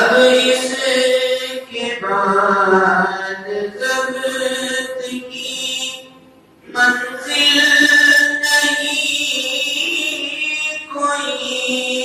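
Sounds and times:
man chanting devotional poem: 0.0 - 12.0.

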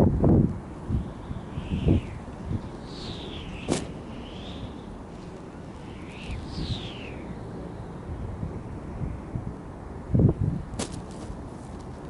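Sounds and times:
rushing whoosh of air: 0.0 - 12.0
kite snapping: 0.4 - 7.3, 10.7 - 12.0.

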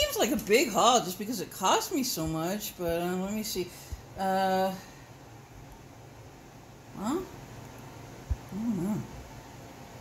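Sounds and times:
wavering vocal sound: 8.5 - 9.2.

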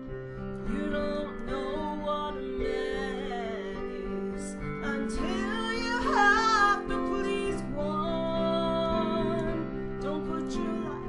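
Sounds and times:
woman singing country ballad: 0.6 - 11.0.

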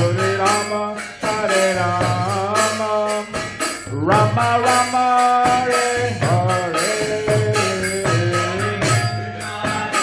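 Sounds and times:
small hand cymbals: 0.0 - 10.0
men chanting: 4.0 - 10.0.

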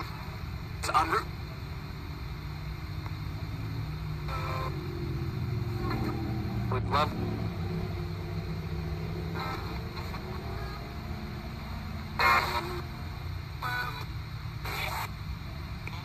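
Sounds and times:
radio hiss: 0.0 - 16.0
low rumble: 3.0 - 14.5
snatches of broadcast sound: 4.2 - 4.8, 9.1 - 16.0.

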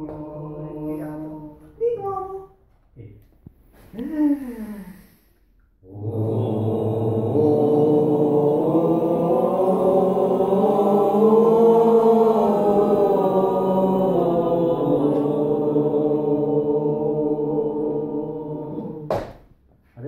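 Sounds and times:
group holding sustained vowel: 0.0 - 1.8, 5.8 - 19.2.

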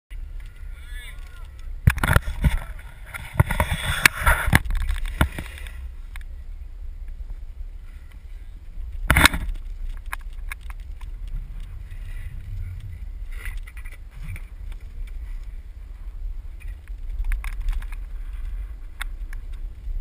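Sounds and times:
longboard wheels rolling on asphalt: 0.1 - 20.0
wind on microphone: 0.1 - 20.0.

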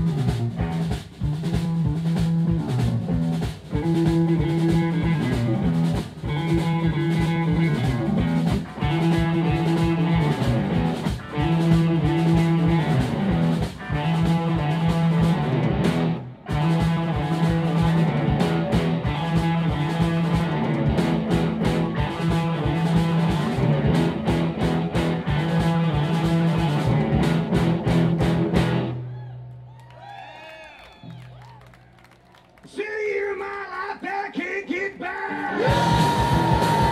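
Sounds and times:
live rock band playing: 0.0 - 29.1, 35.3 - 36.9
guitar ringing out: 3.7 - 29.5.

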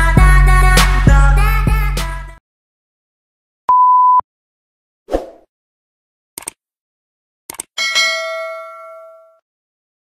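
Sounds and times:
bright bell ding: 7.8 - 9.4.

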